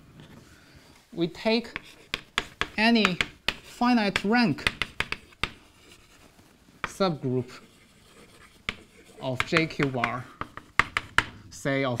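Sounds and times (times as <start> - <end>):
chalk scratching on blackboard: 1.5 - 11.4
chalk tapping on blackboard: 1.6 - 6.2, 6.8 - 11.4.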